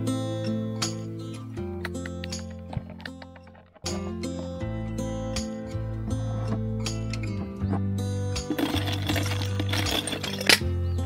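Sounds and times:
instrumental background music: 0.0s - 11.0s
ice cubes rattling in cooler: 8.5s - 10.6s.

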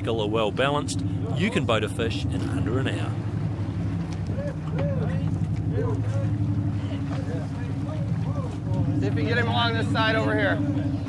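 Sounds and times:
boat engine idling: 0.0s - 11.0s
faint voices calling: 0.4s - 11.0s.

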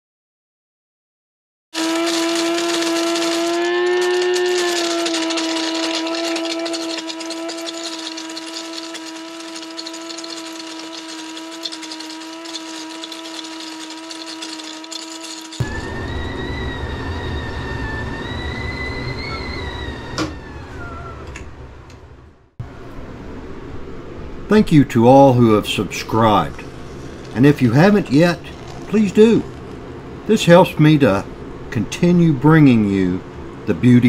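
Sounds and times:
coffee grinder grinding beans: 1.8s - 16.0s, 26.0s - 30.8s
kettle whistling: 1.8s - 21.5s, 25.9s - 31.3s
gas burner roar: 1.8s - 34.0s.

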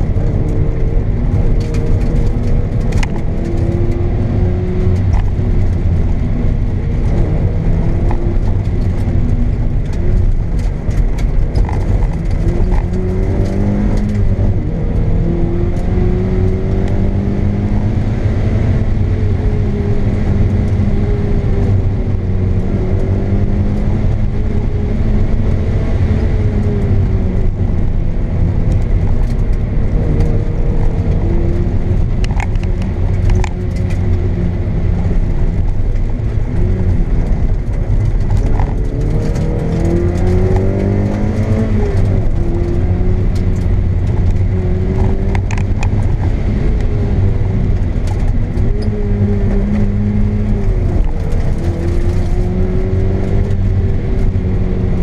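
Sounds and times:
car engine revving inside cabin: 0.0s - 55.0s.

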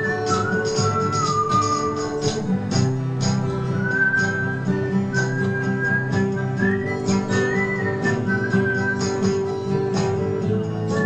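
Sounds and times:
man whistling a melody: 0.0s - 11.0s
strummed acoustic guitars: 0.0s - 11.0s.

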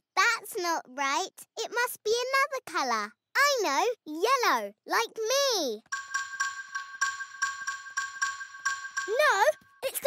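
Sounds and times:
chiming mallet percussion notes: 5.9s - 9.8s.

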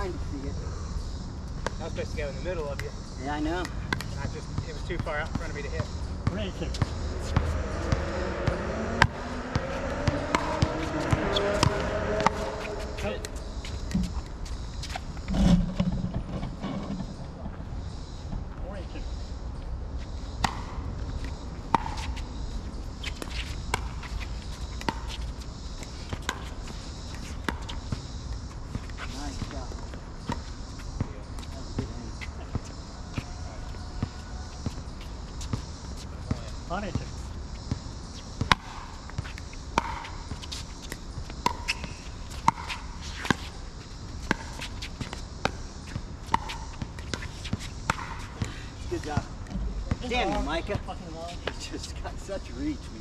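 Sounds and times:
people talking: 0.0s - 0.8s, 1.8s - 6.9s, 11.2s - 13.4s, 29.1s - 29.8s, 31.0s - 33.8s, 36.3s - 37.2s, 48.9s - 53.0s.

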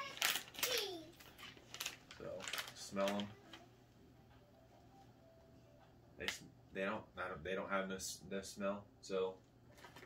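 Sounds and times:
plastic snack bag crinkling: 0.0s - 3.6s.

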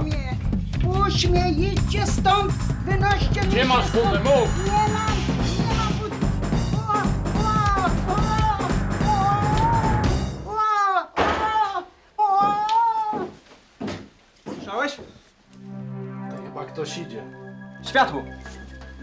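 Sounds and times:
tense music with pulsing bass: 0.1s - 10.5s, 15.6s - 19.0s
woman crying out: 6.8s - 13.3s.

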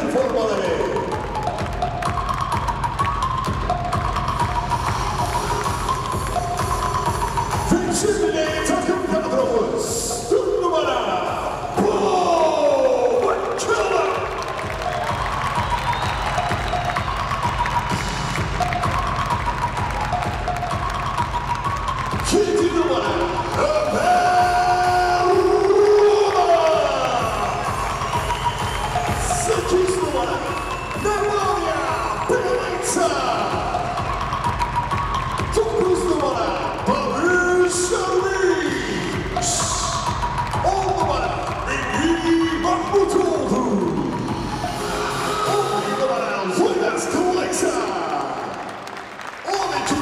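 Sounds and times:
electronic music with pounding beat: 0.0s - 50.0s
voice over public address: 7.6s - 14.4s, 22.2s - 27.6s, 29.2s - 34.0s.

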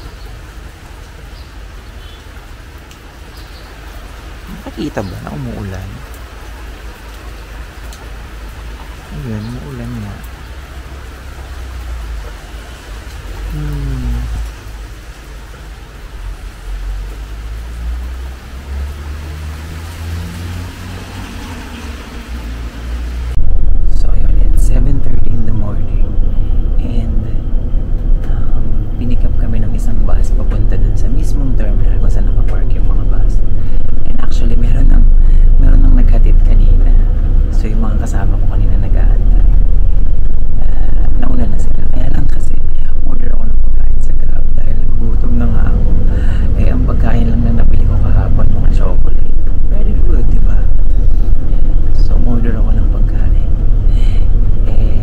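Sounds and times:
rain on wet street: 0.0s - 55.0s
man talking: 4.5s - 6.1s, 9.1s - 10.3s, 13.5s - 14.4s, 23.9s - 26.1s, 26.8s - 27.5s, 51.9s - 53.6s
passing traffic: 14.3s - 23.4s.

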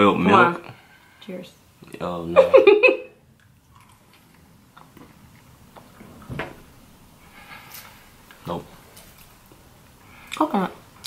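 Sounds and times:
people chewing jelly beans: 3.3s - 6.0s, 7.4s - 10.7s.

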